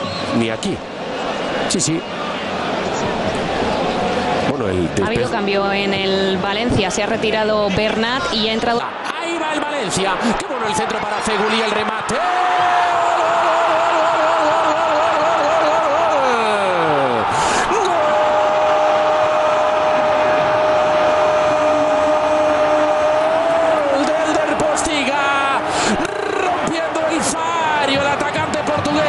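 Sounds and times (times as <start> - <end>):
stadium crowd cheering: 0.0 - 29.0
fast excited commentary: 4.5 - 12.2, 23.9 - 29.0
commentator's long goal shout: 9.1 - 29.0.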